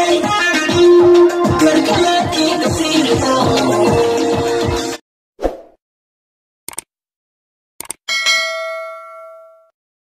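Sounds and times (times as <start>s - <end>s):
bell ding: 8.1s - 9.8s.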